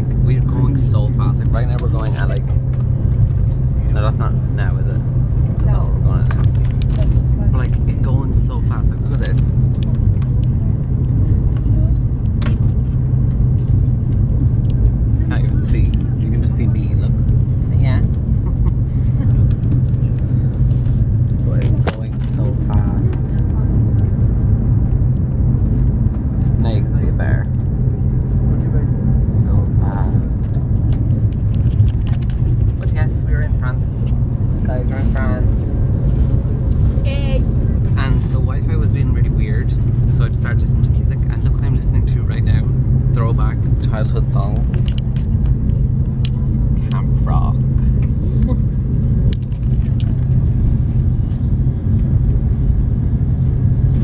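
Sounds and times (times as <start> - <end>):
train low rumble from inside: 0.0 - 54.0.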